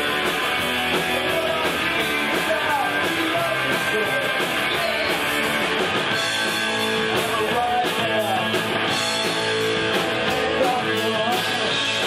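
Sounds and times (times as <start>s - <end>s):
rock band playing: 0.0s - 12.0s
man singing: 0.9s - 5.6s, 6.8s - 8.7s, 10.1s - 12.0s.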